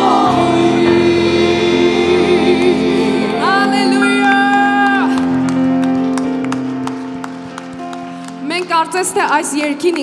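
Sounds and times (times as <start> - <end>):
sustained keyboard chords: 0.0 - 10.0
hand claps: 5.1 - 10.0.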